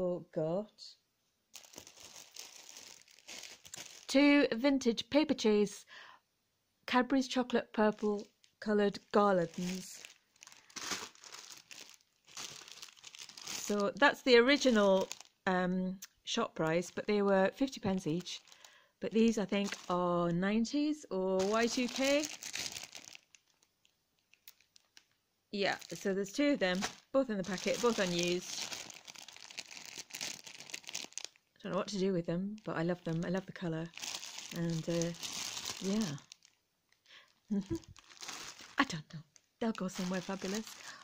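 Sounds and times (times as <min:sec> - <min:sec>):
plastic packets crinkling: 0:01.5 - 0:04.3, 0:07.8 - 0:15.5, 0:16.6 - 0:41.0.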